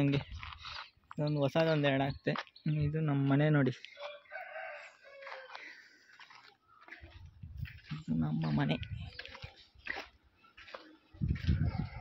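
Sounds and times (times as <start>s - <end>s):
rooster crowing: 4.0s - 5.8s.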